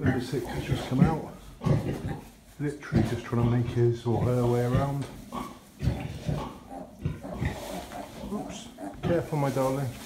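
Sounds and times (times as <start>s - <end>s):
pig grunting: 0.0s - 9.6s.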